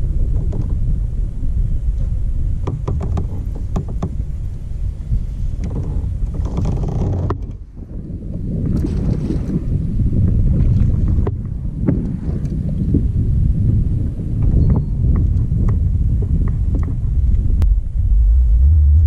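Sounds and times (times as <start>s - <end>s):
wind buffeting microphone: 0.0s - 19.0s
light clicks and knocks: 2.0s - 4.2s, 5.6s - 7.6s.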